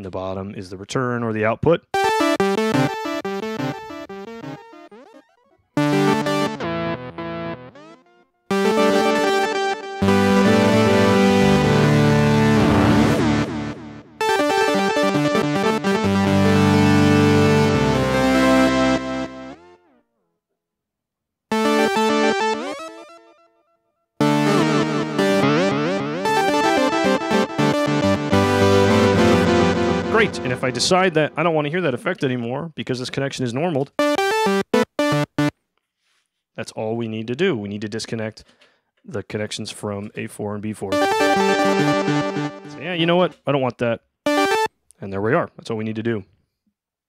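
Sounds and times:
synthesizer chords with delay: 0:02.0 - 0:19.6, 0:24.2 - 0:32.2, 0:40.9 - 0:43.3, 0:44.3 - 0:44.7.

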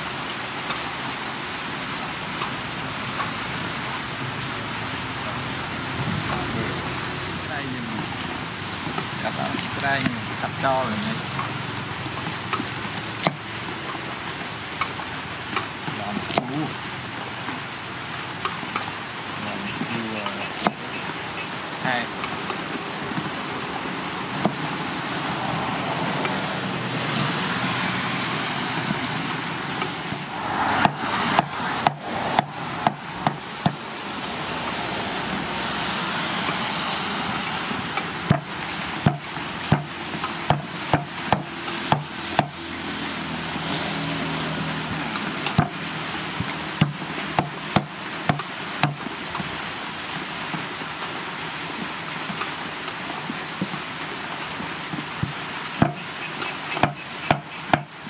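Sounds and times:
cleaver chopping on wooden board: 0:12.5 - 0:13.4, 0:16.1 - 0:16.6, 0:19.7 - 0:21.1, 0:24.3 - 0:24.6, 0:30.5 - 0:33.8, 0:38.3 - 0:42.6, 0:46.8 - 0:49.0, 0:55.8 - 0:57.9.

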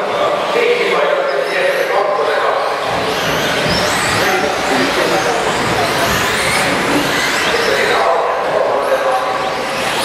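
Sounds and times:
rc truck motors whining: 0:02.6 - 0:08.1, 0:08.9 - 0:10.0
tyre and track noise: 0:02.9 - 0:08.0.

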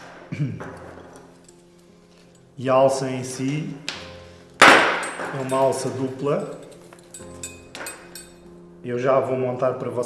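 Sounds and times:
soft background music: 0:00.0 - 0:10.0
metallic clinks of strap buckles: 0:00.8 - 0:02.6, 0:04.5 - 0:08.5.

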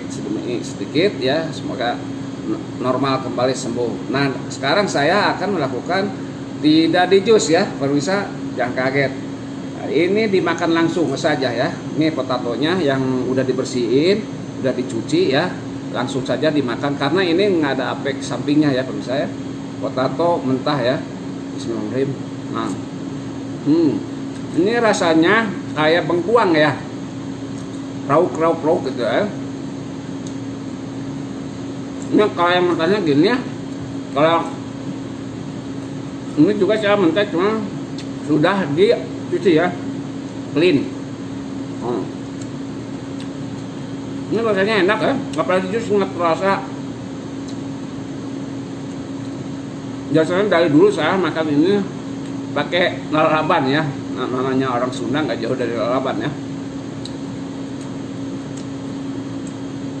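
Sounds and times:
air conditioning drone: 0:00.0 - 1:00.0
steady mechanical hum: 0:00.0 - 1:00.0.

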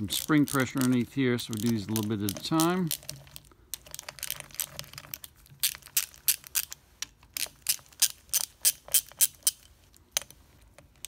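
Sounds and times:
ratchet wrench clicking: 0:07.4 - 0:09.6.

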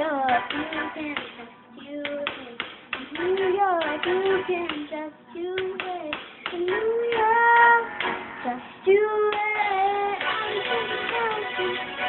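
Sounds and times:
girl singing: 0:00.0 - 0:11.8.

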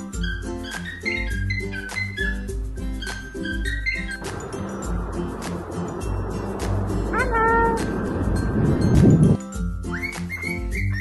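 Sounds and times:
cockatoo call: 0:00.0 - 0:04.4, 0:09.9 - 0:11.0
short rising whistles: 0:00.0 - 0:04.9, 0:09.8 - 0:11.0.

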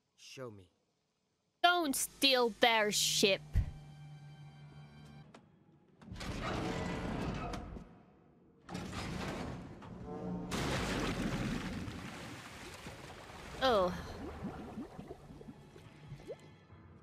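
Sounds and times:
person talking: 0:01.6 - 0:03.7, 0:13.6 - 0:14.0.

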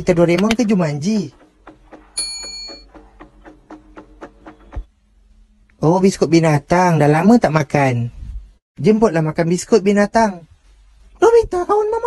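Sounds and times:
light ticking percussion: 0:00.0 - 0:04.8.

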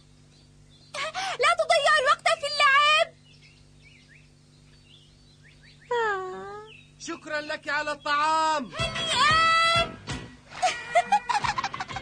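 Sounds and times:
faint bird chirps: 0:00.1 - 0:08.3.

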